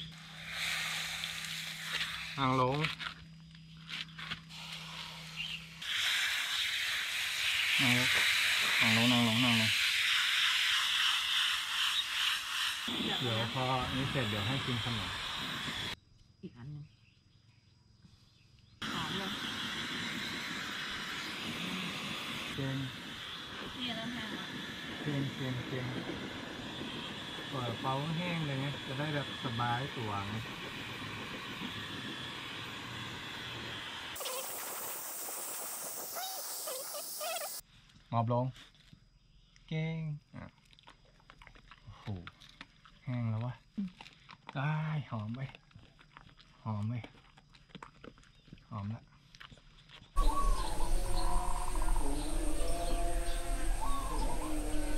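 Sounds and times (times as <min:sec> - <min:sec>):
garden hose spraying water: 0:00.0 - 0:03.2, 0:03.8 - 0:16.0, 0:18.8 - 0:37.6, 0:50.2 - 0:54.9
hair dryer blowing: 0:10.5 - 0:16.0, 0:18.8 - 0:37.6, 0:50.2 - 0:54.9.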